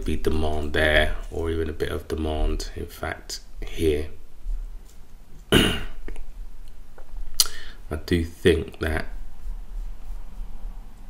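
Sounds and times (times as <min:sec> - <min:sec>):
person coughing: 0:05.5 - 0:06.0.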